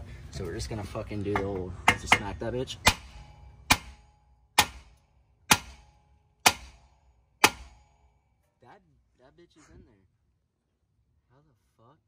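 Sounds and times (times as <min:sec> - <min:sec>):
hammer striking metal axle: 0:01.3 - 0:08.2.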